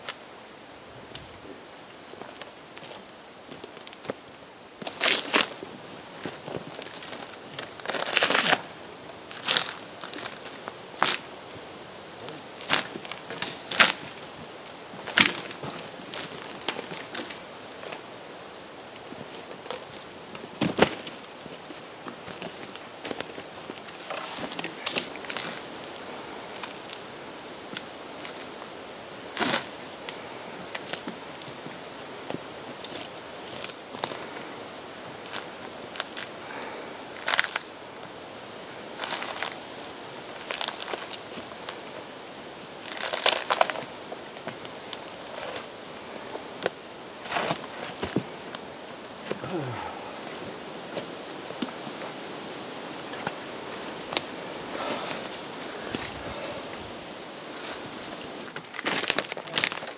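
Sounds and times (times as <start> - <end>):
bark cracking and tearing from log: 42.8 - 45.7, 58.6 - 59.9.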